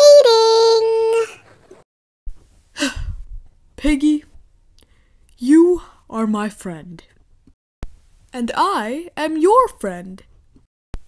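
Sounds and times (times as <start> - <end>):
person sighing: 2.8 - 3.2.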